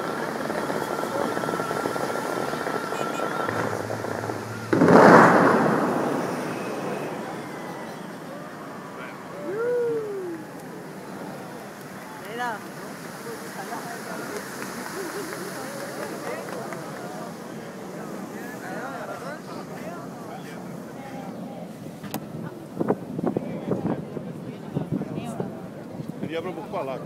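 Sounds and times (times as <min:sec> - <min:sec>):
fountain water spray rushing: 0:00.0 - 0:23.3
crowd chattering: 0:00.0 - 0:27.0.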